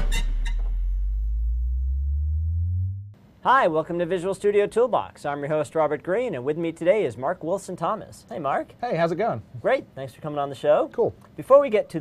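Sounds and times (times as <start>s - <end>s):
low synthesized rising tone: 0.0s - 3.2s.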